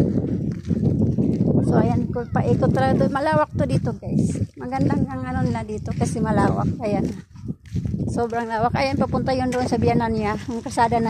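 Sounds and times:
footsteps on dirt and pavement: 0.0 - 11.0
wind rumbling on microphone: 0.0 - 11.0
person speaking: 1.6 - 7.2.

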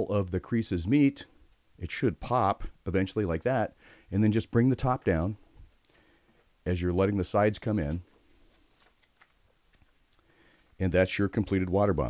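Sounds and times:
paper crinkling: 7.8 - 10.3.

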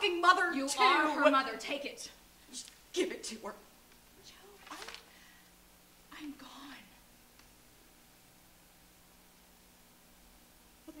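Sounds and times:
woman speaking softly: 6.1 - 7.0.

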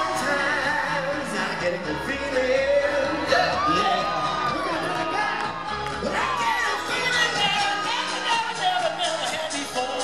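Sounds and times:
audience cheering and whooping: 0.0 - 10.0
live pop music: 0.0 - 10.0.

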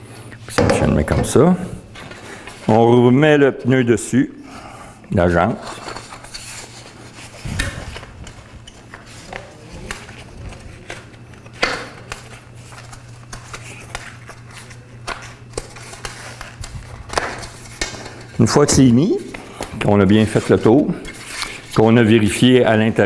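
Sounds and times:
steady low hum: 0.0 - 23.0
sharp knocks: 0.5 - 1.5.

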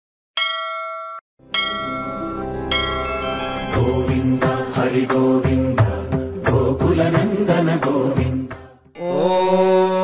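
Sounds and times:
bell ringing: 0.4 - 4.8.

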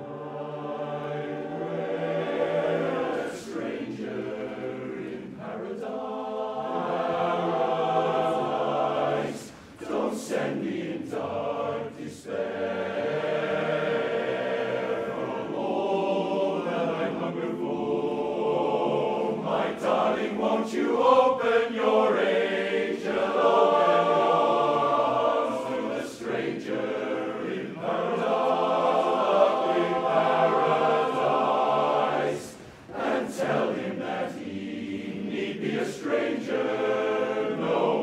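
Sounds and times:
male chorus singing a cappella: 0.0 - 38.0.

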